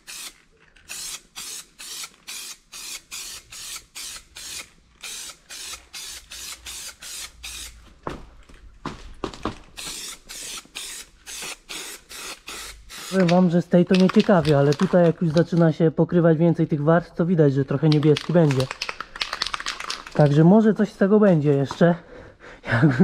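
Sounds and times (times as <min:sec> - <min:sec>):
spray paint can hissing: 0:00.0 - 0:07.8, 0:09.8 - 0:13.4.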